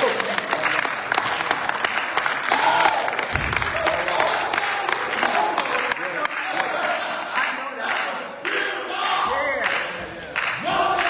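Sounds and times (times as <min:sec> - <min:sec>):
hand clapping: 0:00.0 - 0:11.0.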